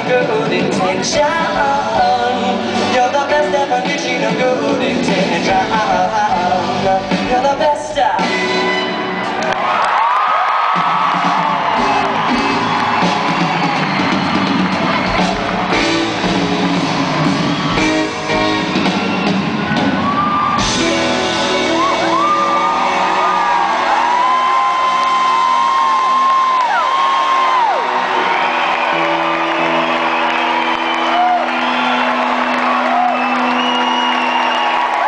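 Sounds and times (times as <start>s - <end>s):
live band with guitar and horns: 0.0s - 35.0s
audience whooping and shouting: 8.9s - 35.0s.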